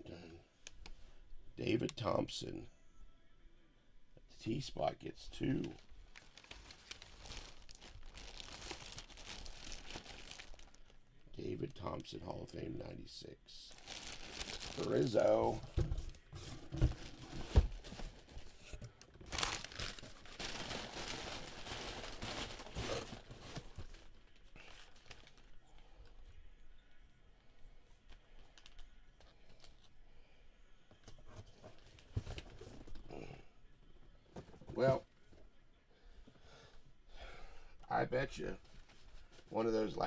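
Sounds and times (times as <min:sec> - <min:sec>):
paper and plastic bag crinkling: 0:05.6 - 0:11.0, 0:13.7 - 0:25.6.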